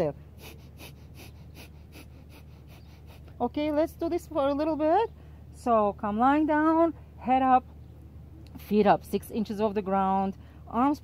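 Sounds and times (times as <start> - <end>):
people talking: 3.4 - 7.6, 8.5 - 11.0.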